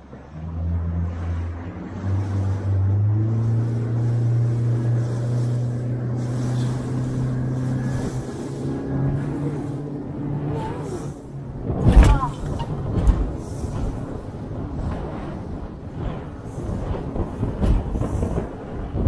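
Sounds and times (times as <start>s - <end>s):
motorboat engine running: 0.0s - 19.0s
water noise: 0.0s - 19.0s
wind: 0.0s - 19.0s.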